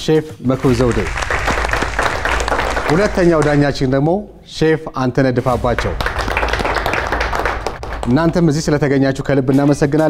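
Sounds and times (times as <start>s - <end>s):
applause: 0.5s - 4.1s, 5.5s - 8.4s.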